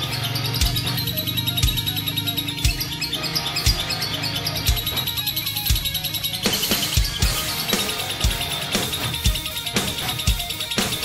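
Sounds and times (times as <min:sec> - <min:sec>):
background music with steady beat: 0:00.0 - 0:11.0
lovebird chirping: 0:00.0 - 0:11.0.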